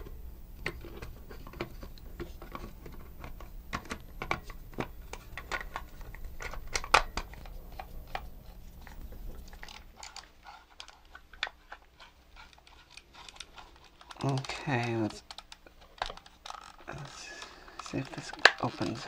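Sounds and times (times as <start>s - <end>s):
plastic toy parts clicking: 0.6s - 19.0s.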